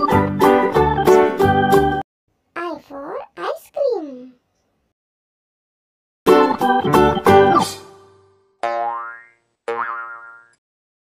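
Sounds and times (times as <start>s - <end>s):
cartoon boing effects: 8.6s - 10.6s.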